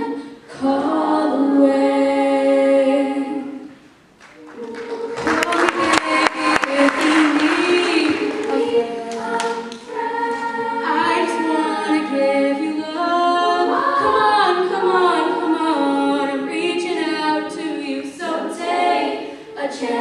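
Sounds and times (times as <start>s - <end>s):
girls' choir singing: 0.0s - 3.8s, 4.4s - 20.0s.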